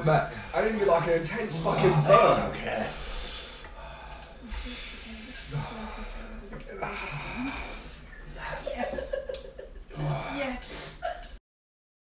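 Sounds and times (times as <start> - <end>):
man breathing hard through mouth: 2.8 - 8.1.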